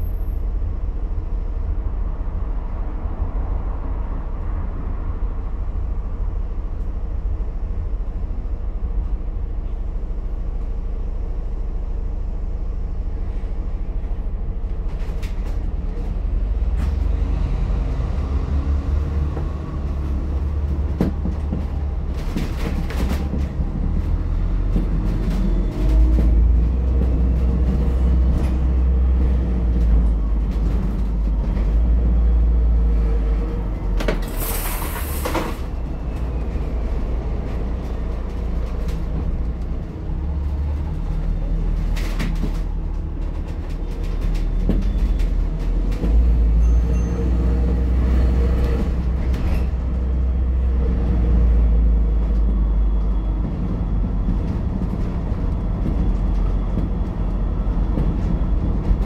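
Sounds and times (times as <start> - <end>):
bus drivetrain and road rumble: 0.0 - 59.0.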